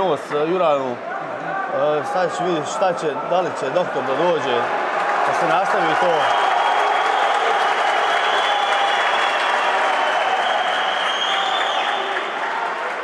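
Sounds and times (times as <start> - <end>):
crowd applauding: 4.0 - 13.0.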